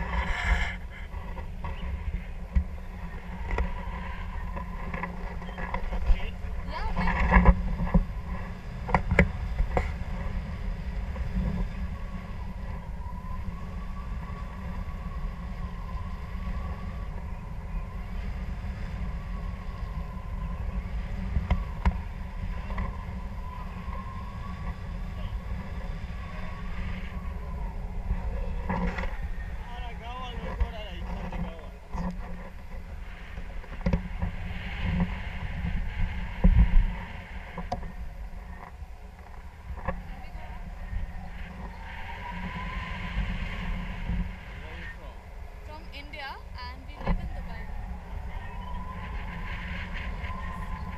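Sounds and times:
wind rushing over microphone: 0.0 - 50.9.

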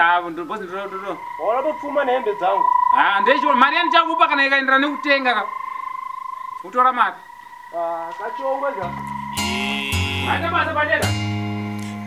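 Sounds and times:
man talking: 0.0 - 5.5, 7.8 - 11.1
steady high-pitched tone: 0.0 - 11.3.

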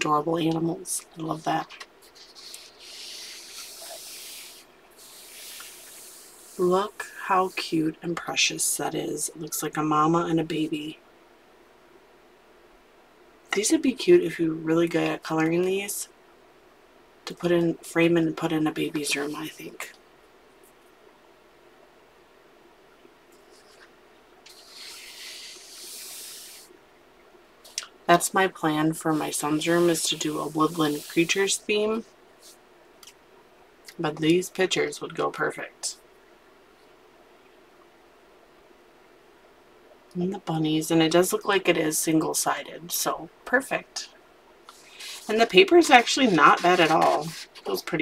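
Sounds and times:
hand rubbing paper: 1.2 - 7.8, 24.5 - 26.7, 29.1 - 31.5, 44.7 - 47.9
paper page turning: 1.6 - 4.4, 44.7 - 47.9.

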